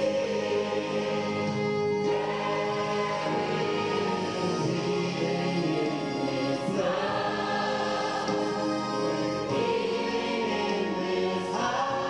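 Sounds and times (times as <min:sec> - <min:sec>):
gospel choir singing: 0:00.0 - 0:12.0.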